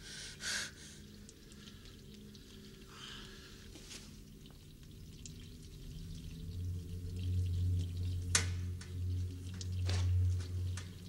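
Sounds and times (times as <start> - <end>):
low steady droning tone: 0.0 - 11.0.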